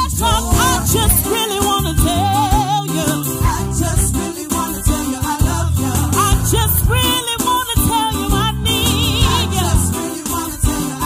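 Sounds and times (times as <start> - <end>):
instrumental backing with beat: 0.0 - 11.0
women's group singing gospel: 0.0 - 11.0.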